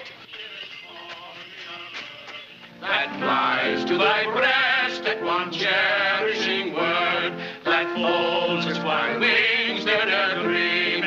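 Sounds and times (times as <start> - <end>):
faint singing voices: 0.0 - 11.0
music: 0.0 - 11.0.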